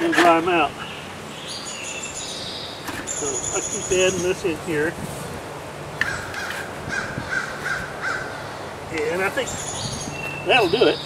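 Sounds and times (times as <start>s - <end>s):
crow cawing: 6.0s - 8.6s.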